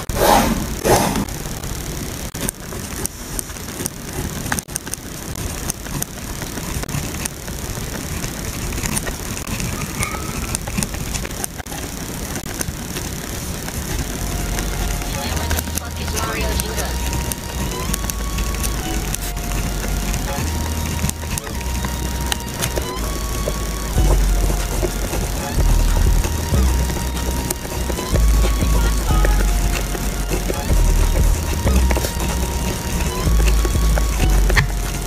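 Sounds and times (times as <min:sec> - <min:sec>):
pen scratching on paper: 0:13.9 - 0:35.0
held notes over deep bass: 0:14.0 - 0:35.0.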